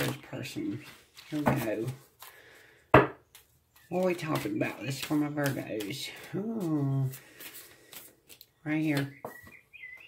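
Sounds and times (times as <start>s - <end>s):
faint rustle of cards: 0.0s - 9.1s.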